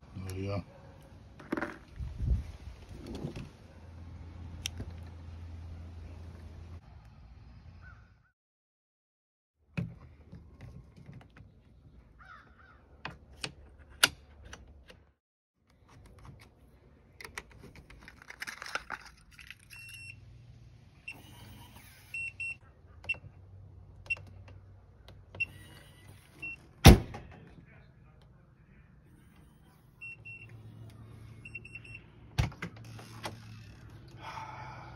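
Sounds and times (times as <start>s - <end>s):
sharp clicks of lock parts: 13.0s - 15.1s.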